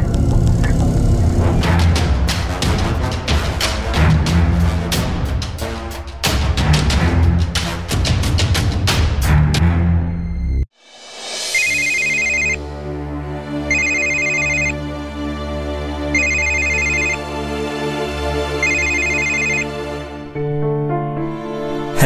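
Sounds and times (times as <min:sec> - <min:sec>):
background score music: 0:00.0 - 0:22.0
telephone ringing: 0:11.6 - 0:12.6, 0:13.7 - 0:14.7, 0:16.2 - 0:17.2, 0:18.6 - 0:19.6.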